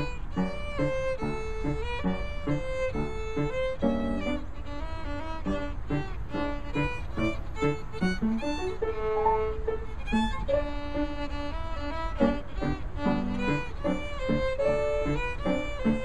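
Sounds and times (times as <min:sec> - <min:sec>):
piano accompaniment: 0:00.0 - 0:16.0
violin playing quick notes: 0:00.0 - 0:16.0.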